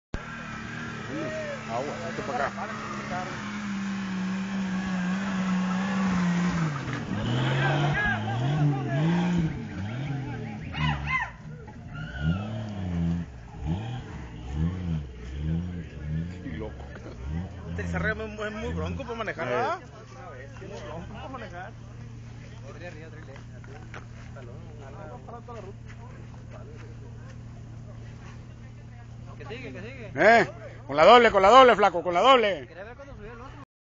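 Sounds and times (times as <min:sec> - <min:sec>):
engine revving: 0:00.2 - 0:30.6
faint voices talking: 0:14.2 - 0:33.6.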